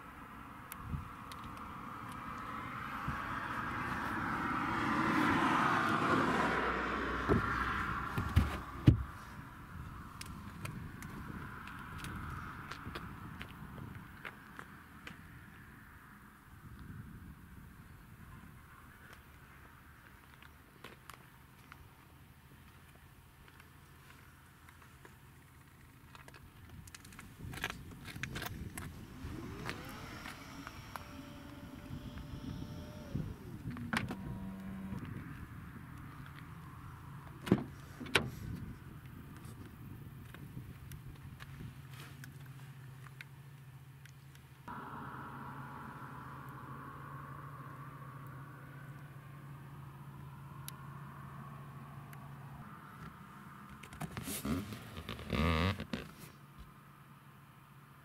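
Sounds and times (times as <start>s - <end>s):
vehicle passing by: 1.4s - 10.5s, 27.6s - 38.0s, 44.7s - 56.3s.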